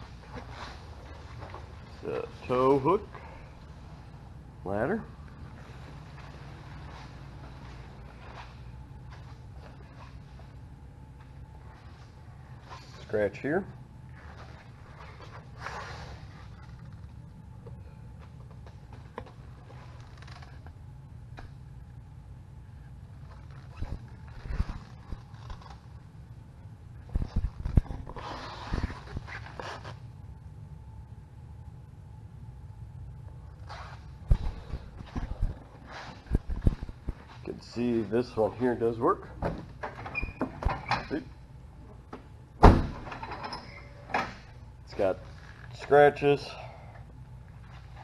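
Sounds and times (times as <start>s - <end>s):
steady low hum: 0.0s - 48.0s
soft breathing: 3.1s - 4.1s, 46.4s - 47.2s.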